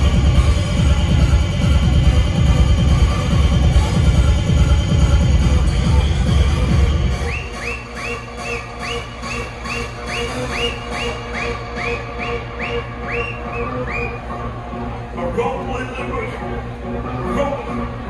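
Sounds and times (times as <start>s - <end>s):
pounding bass kick: 0.0s - 7.4s
hardcore techno music: 0.0s - 18.0s
swooping whistle-like synth note: 7.1s - 14.3s.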